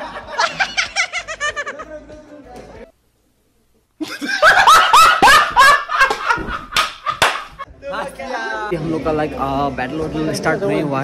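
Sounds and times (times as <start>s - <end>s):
high-pitched human laughter: 0.0s - 2.0s.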